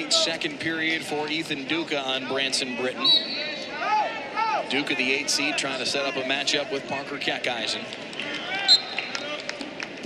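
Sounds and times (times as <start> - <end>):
arena voices: 2.0 - 9.5.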